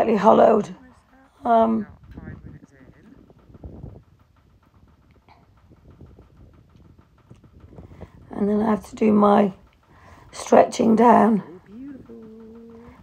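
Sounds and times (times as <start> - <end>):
low uneven rumble: 0.0 - 13.0.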